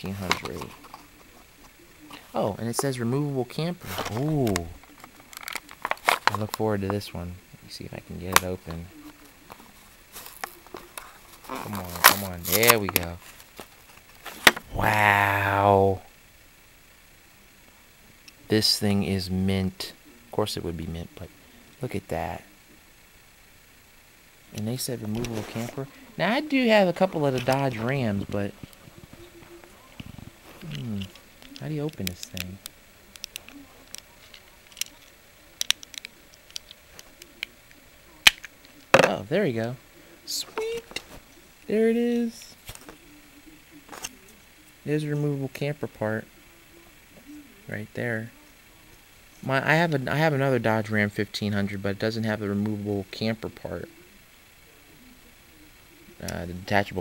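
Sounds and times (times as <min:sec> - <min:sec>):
plastic packaging crackling: 0:09.1 - 0:14.7, 0:38.2 - 0:39.0
plastic snap: 0:38.2 - 0:39.1.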